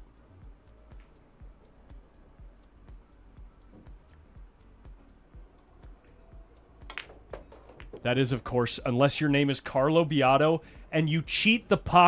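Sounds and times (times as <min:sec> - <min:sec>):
cue tip striking ball: 0:06.8 - 0:08.0
billiard balls clacking: 0:06.8 - 0:08.1.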